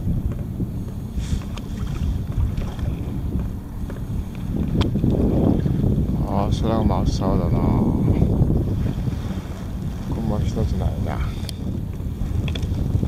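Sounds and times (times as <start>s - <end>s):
waves lapping at hull: 0.0s - 13.0s
wind buffeting microphone: 0.0s - 13.0s.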